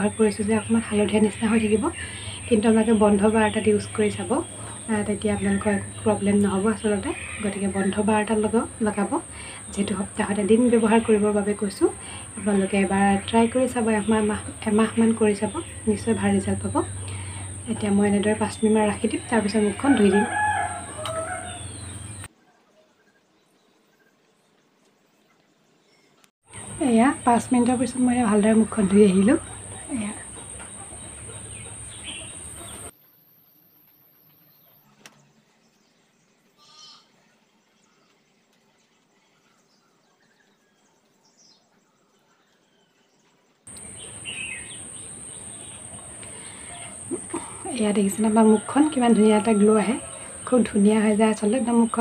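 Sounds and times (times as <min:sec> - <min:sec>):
woman's voice: 0:00.0 - 0:21.6, 0:26.6 - 0:30.5, 0:46.0 - 0:52.0
steady hum: 0:00.0 - 0:22.3, 0:26.5 - 0:33.4, 0:43.7 - 0:52.0
bird chirp: 0:00.0 - 0:32.9, 0:34.2 - 0:52.0
bird calling: 0:11.9 - 0:22.3, 0:26.5 - 0:32.9, 0:43.7 - 0:52.0
faint bird trill: 0:36.6 - 0:37.2.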